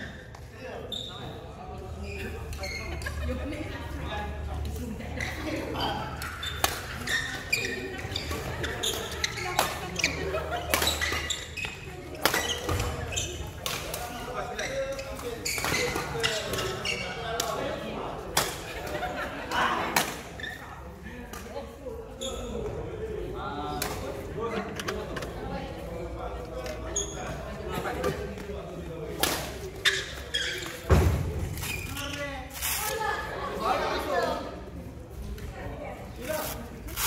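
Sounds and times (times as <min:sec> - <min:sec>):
players' voices: 0:00.0 - 0:37.0.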